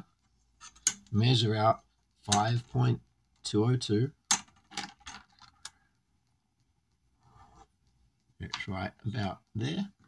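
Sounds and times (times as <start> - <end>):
ruler scraping on paper: 7.2 - 7.7.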